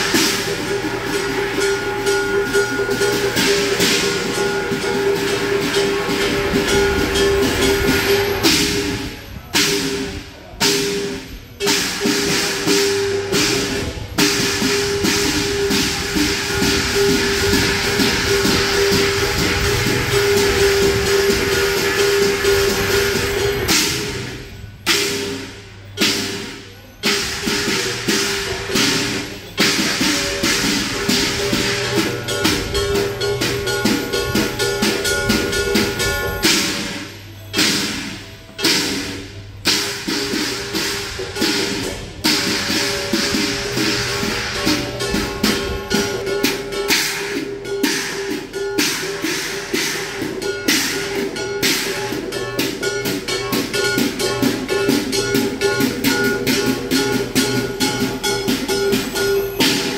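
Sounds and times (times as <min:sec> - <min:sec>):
cymbal crashes: 0:00.0 - 0:59.9
fast drumming: 0:00.0 - 0:59.9
heavy drum strikes: 0:00.0 - 0:59.9
steady ringing tone: 0:00.0 - 0:59.9.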